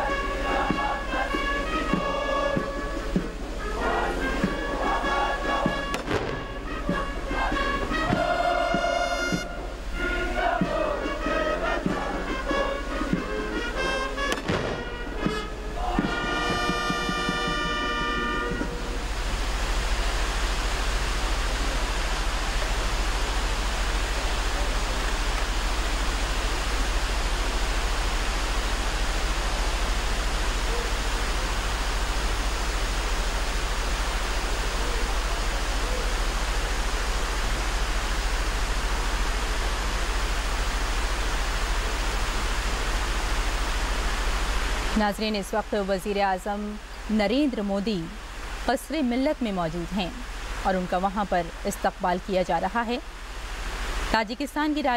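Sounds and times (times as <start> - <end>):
band holding a chord: 0.0 - 45.3
fountains splashing: 0.0 - 54.9.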